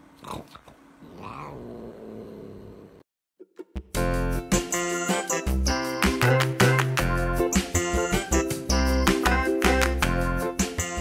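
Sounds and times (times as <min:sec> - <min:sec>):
cat growling low: 0:00.2 - 0:03.0
cat rising moan: 0:01.0 - 0:03.0.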